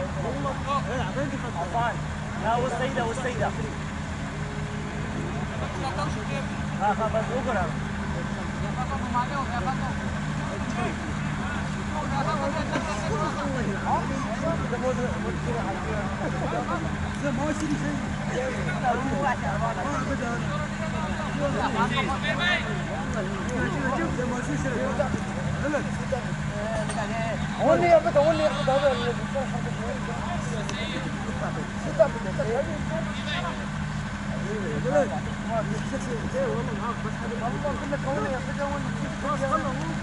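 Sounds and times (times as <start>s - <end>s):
distant indistinct voices: 0.0s - 40.0s
low engine hum: 0.0s - 40.0s.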